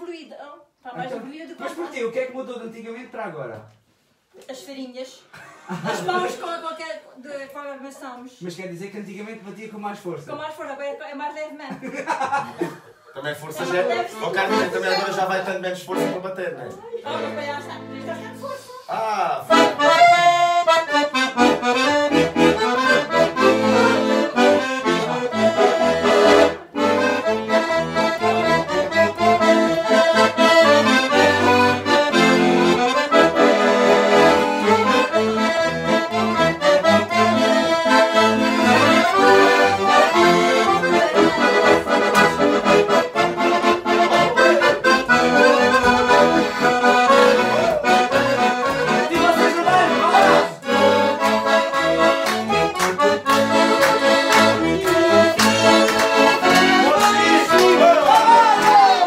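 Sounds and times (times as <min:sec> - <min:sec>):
button accordions playing dance tune: 0:13.5 - 0:59.0.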